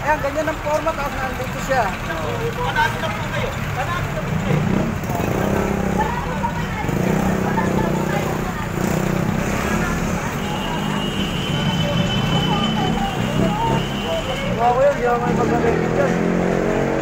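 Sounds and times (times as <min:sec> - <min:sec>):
people speaking: 0:00.0 - 0:16.9
street traffic: 0:00.0 - 0:17.0
vehicle engine humming: 0:00.0 - 0:17.0.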